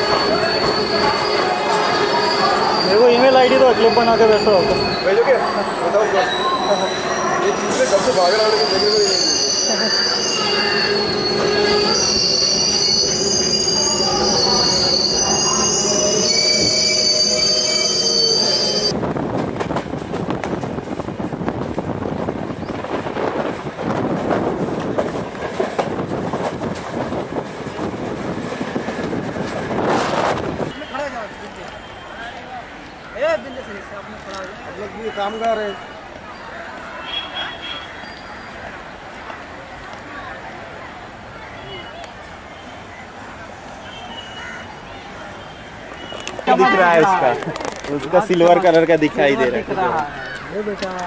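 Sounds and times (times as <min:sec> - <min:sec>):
train wheels squealing: 0:00.0 - 0:18.9, 0:37.4 - 0:38.7, 0:43.8 - 0:44.7
train clattering over track: 0:18.9 - 0:30.7.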